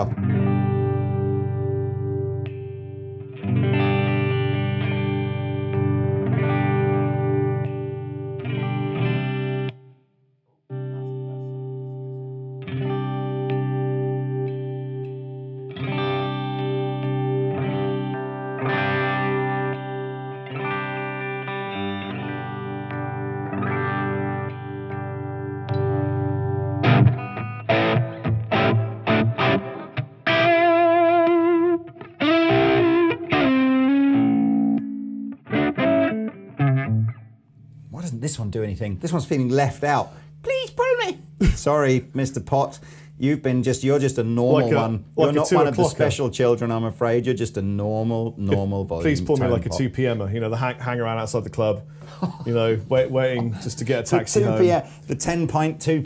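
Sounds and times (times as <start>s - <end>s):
electric guitar chords ringing: 0.0s - 10.0s, 10.7s - 37.9s, 42.6s - 47.3s, 48.4s - 52.2s, 52.8s - 56.0s
electric guitar lead line: 0.0s - 10.0s, 10.7s - 37.5s, 51.8s - 55.1s.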